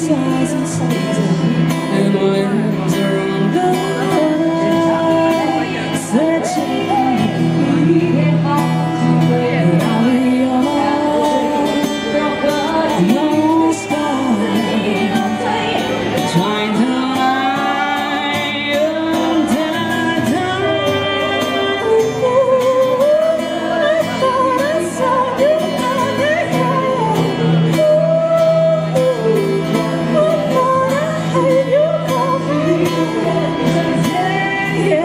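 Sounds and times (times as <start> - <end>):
acoustic guitar: 0.0 - 35.0
woman singing pop ballad: 0.0 - 35.0.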